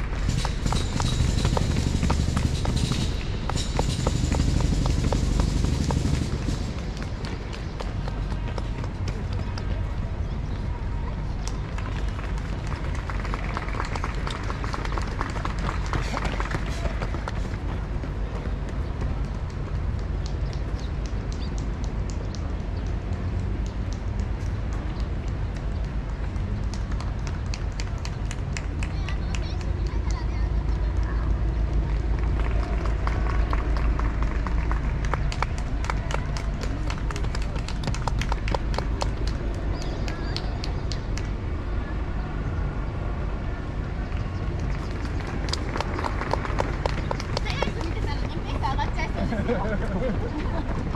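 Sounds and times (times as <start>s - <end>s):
low rumble: 0.0s - 20.5s
running footsteps on asphalt: 0.0s - 41.5s, 44.1s - 50.9s.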